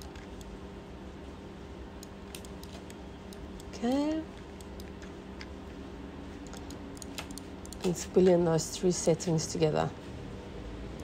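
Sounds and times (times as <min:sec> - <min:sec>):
low electrical hum: 0:00.0 - 0:11.0
keyboard and mouse clicks: 0:02.0 - 0:05.5, 0:06.4 - 0:08.0.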